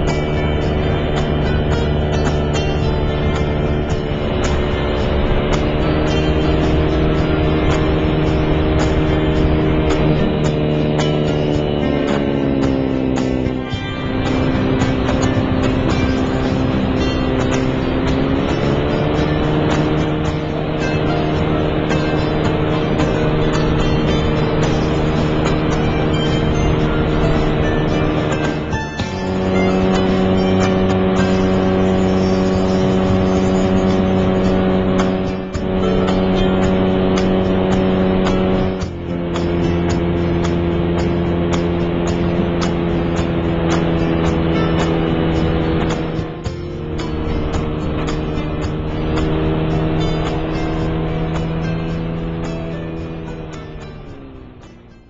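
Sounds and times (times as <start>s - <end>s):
engine and propeller running: 0.0s - 55.0s.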